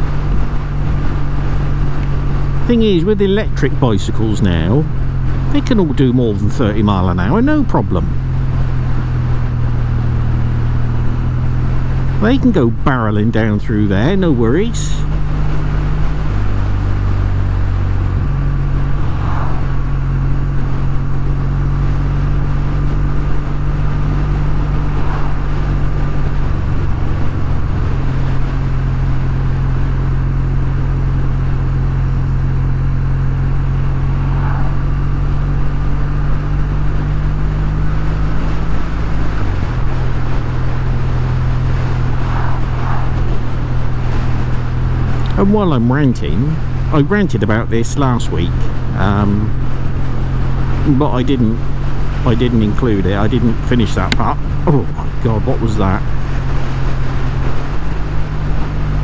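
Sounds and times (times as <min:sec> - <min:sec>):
motorcycle engine running: 0:00.0 - 0:59.0
wind and road noise: 0:00.0 - 0:59.0.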